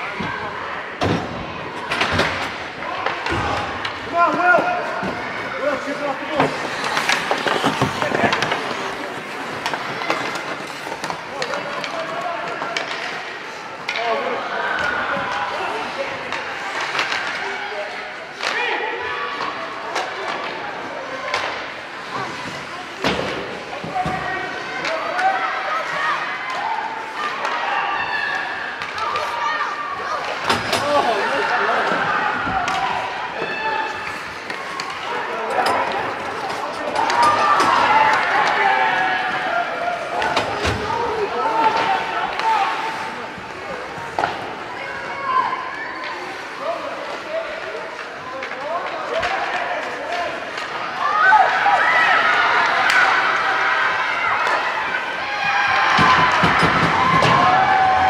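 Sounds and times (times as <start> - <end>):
pucks and sticks knocking boards: 1.0 - 15.3, 43.8 - 44.6, 55.4 - 58.0
spectators shouting: 23.6 - 46.6, 50.5 - 58.0.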